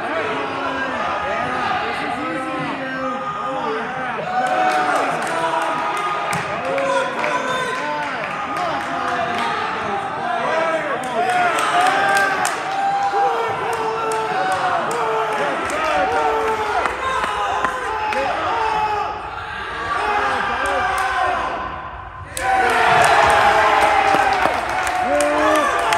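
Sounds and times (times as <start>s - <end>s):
cheering and shouting: 0.0s - 25.9s.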